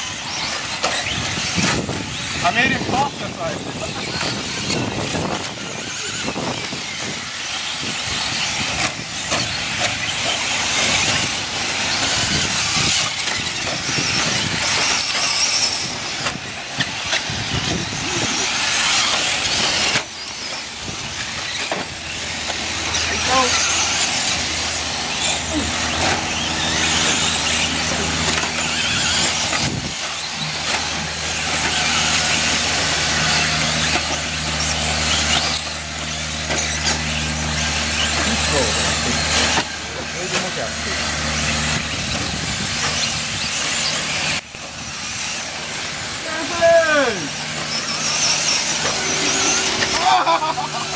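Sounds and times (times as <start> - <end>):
rc truck motors whining: 0.0 - 50.9
tyres scrabbling on dirt: 0.0 - 50.9.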